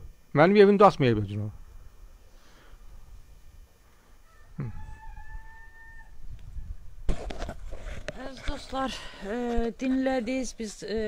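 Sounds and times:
rooster crowing: 0:04.1 - 0:06.8.

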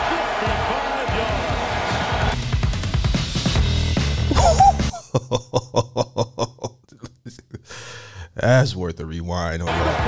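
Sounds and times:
man laughing: 0:04.3 - 0:08.1, 0:09.7 - 0:10.0.

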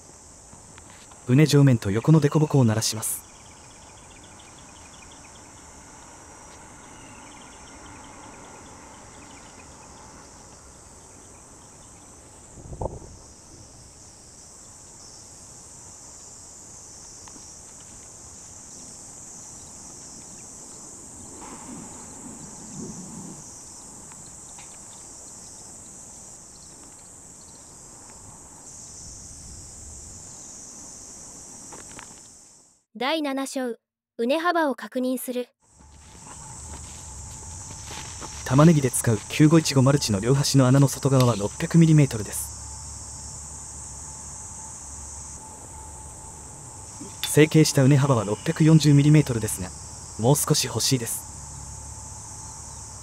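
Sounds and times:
insect chorus: 0:00.0 - 0:32.8, 0:35.6 - 0:53.0
sharp thump: 0:12.6 - 0:13.2
hoe scraping soil: 0:35.8 - 0:41.7.

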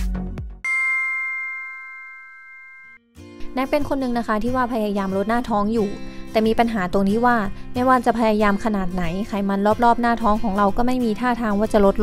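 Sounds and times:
bell-like chime chord: 0:00.7 - 0:03.1.

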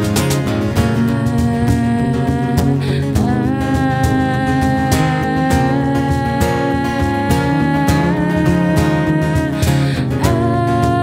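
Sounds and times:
cajon hits: 0:00.0 - 0:08.0
acoustic guitar strumming: 0:00.0 - 0:11.0
electric bass: 0:00.0 - 0:11.0.

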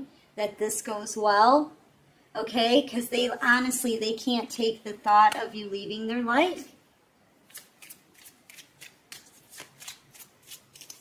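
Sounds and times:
cards being shuffled by hand: 0:07.5 - 0:11.0.

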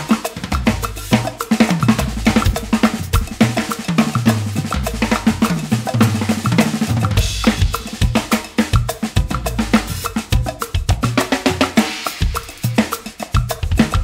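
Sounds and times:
drum kit playing a groove: 0:00.0 - 0:14.0
percussion backing track with cowbell: 0:00.0 - 0:14.0.

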